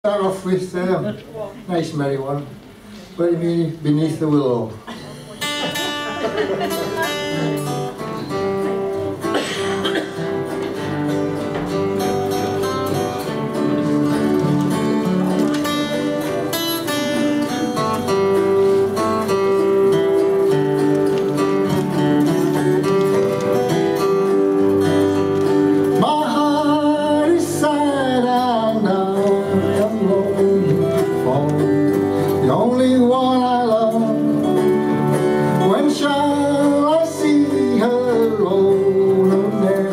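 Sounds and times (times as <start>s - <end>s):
slide guitar: 4.3s - 39.9s
autoharp chords: 5.4s - 32.5s.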